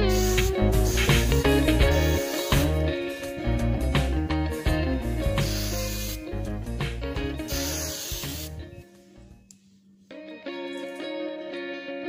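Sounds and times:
spray can hissing: 0:00.0 - 0:03.4, 0:05.2 - 0:06.6, 0:07.4 - 0:08.6
guitar music: 0:00.0 - 0:09.5, 0:10.1 - 0:12.0.

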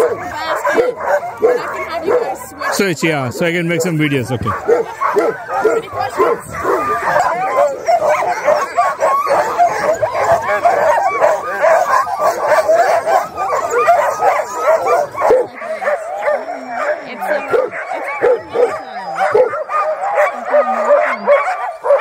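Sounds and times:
sled dogs barking and yipping: 0:00.0 - 0:22.0.

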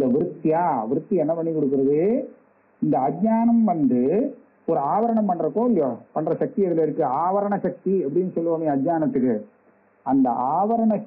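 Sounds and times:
man lecturing: 0:00.0 - 0:09.5, 0:10.1 - 0:11.0.

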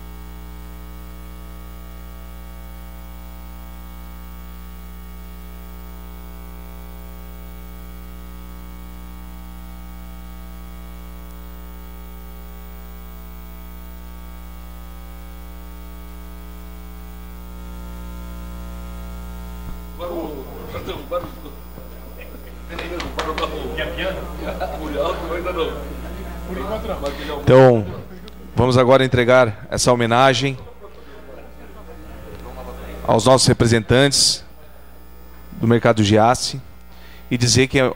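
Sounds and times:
electrical mains hum: 0:00.0 - 0:37.9.

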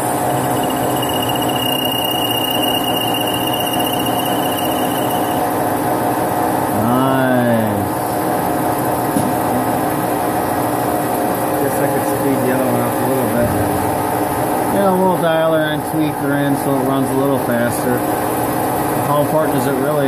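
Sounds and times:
lathe machine drone: 0:00.0 - 0:06.7
thin high squeal: 0:00.3 - 0:05.5.

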